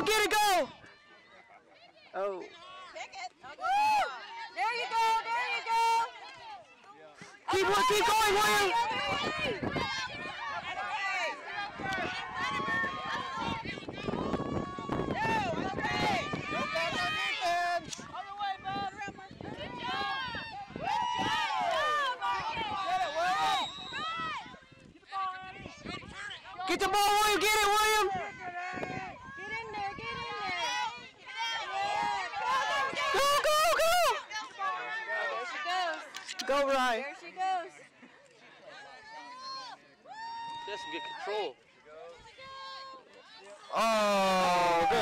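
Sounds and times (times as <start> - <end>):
crowd calling and shouting: 0.0 - 45.0.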